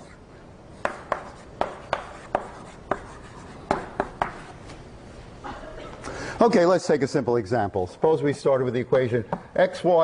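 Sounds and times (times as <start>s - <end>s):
chalk tapping on blackboard: 0.8s - 4.5s.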